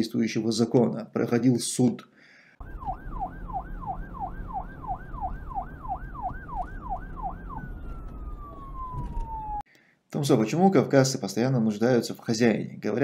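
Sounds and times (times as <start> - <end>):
police siren sweeping: 2.6 - 9.7.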